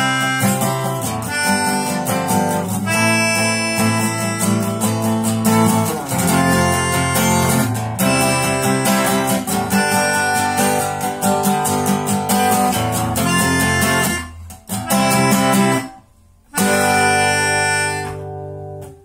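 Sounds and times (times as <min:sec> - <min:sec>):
harmonica chords: 0:00.0 - 0:19.0.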